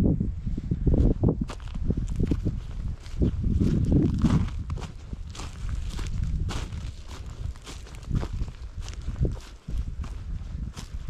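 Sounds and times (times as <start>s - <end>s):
low rumble: 0.0s - 11.0s
footsteps on dry grass: 0.5s - 11.0s.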